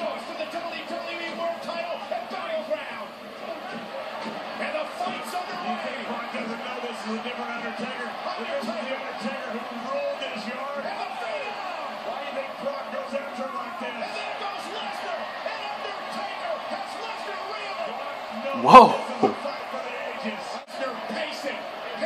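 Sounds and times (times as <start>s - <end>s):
arena crowd noise: 0.0s - 22.0s.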